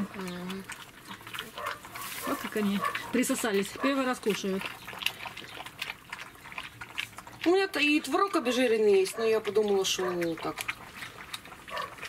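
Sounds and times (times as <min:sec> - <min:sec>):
puppies lapping from steel bowl: 0:00.0 - 0:12.0.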